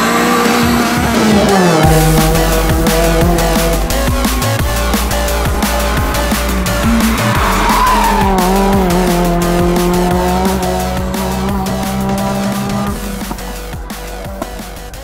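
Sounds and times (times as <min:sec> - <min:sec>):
electronic music with steady beat: 0:00.0 - 0:15.0
rally car engine passing by: 0:00.0 - 0:15.0.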